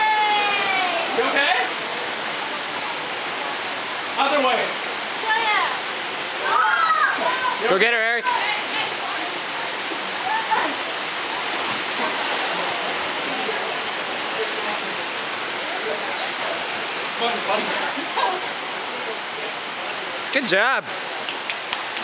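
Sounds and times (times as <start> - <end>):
waterfall rushing into pool: 0.0 - 22.0.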